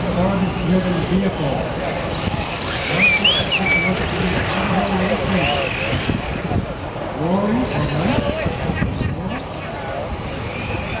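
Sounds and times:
crowd voices: 0.0 - 11.0
high motor whine: 0.0 - 11.0
toy cars running on asphalt: 0.0 - 11.0.

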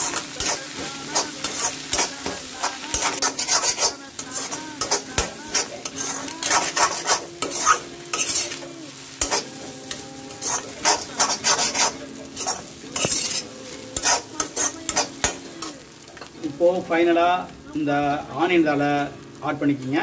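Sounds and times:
metal spatula scraping a pan: 0.0 - 15.8
food sizzling in a pan: 0.0 - 20.0.

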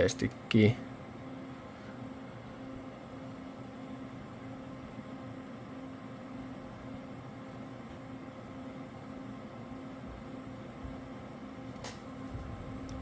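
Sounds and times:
computer fans whirring: 0.0 - 13.0
wavering low hum: 0.4 - 13.0.

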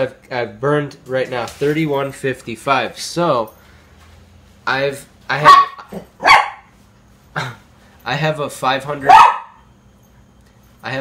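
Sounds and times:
man coughing: 7.3 - 7.7.

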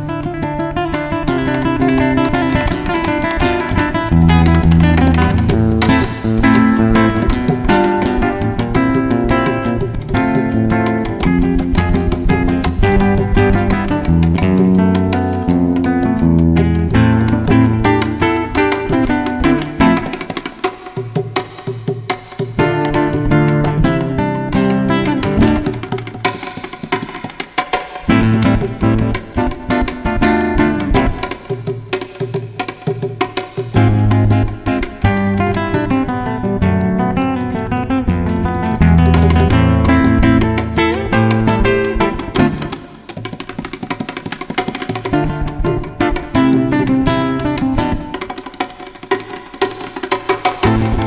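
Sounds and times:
acoustic guitar notes: 0.0 - 20.7, 22.6 - 26.1, 28.1 - 31.4, 33.6 - 43.5, 44.8 - 48.4, 50.6 - 51.0
hand percussion strokes: 0.0 - 51.0.

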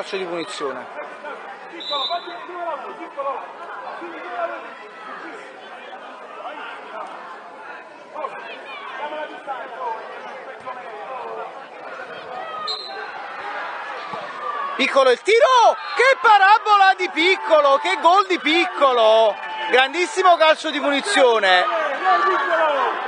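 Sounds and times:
background chatter of voices: 0.0 - 23.0.

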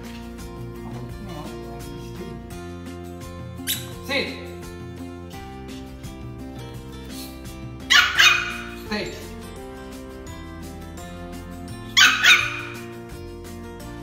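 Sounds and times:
background music: 0.0 - 14.0
puppy barking: 3.6 - 4.0, 7.9 - 8.8, 12.0 - 12.9.

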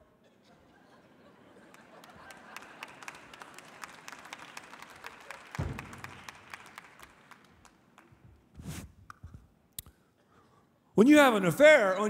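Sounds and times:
audience applauding: 1.6 - 8.2
wooden bench thud on stage: 5.6 - 6.3.

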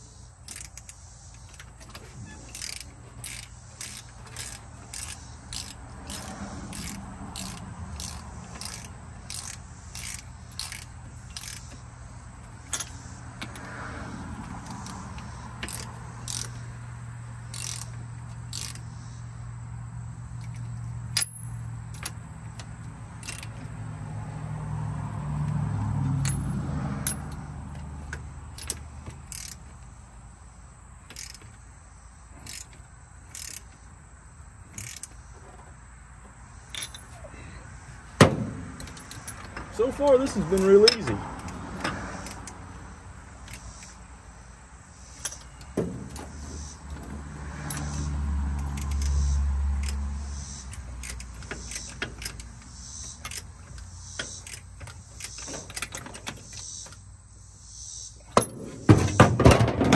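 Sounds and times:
ratchet wrench clicking: 0.3 - 13.7, 14.4 - 19.2, 20.4 - 23.8, 26.2 - 29.9, 31.1 - 31.6, 32.4 - 33.8, 34.7 - 35.2, 38.2 - 42.7, 43.4 - 44.1, 45.0 - 57.1.

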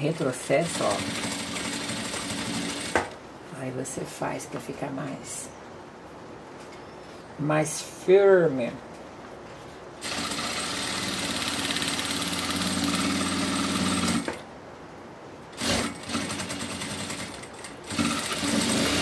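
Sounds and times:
sewing machine stitching: 0.6 - 3.2, 10.0 - 14.4, 15.6 - 19.0.

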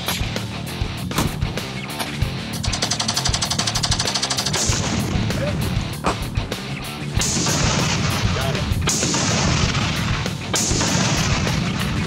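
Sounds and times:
background music: 0.0 - 12.0
rapid automatic gunfire: 2.6 - 5.0, 7.2 - 12.0.

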